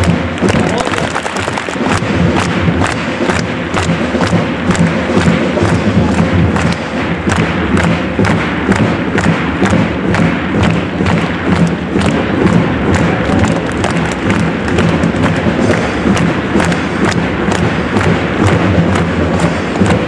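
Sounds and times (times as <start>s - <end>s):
crowd noise: 0.0s - 20.0s
drums beating: 0.0s - 20.0s
rhythmic clapping: 0.0s - 20.0s.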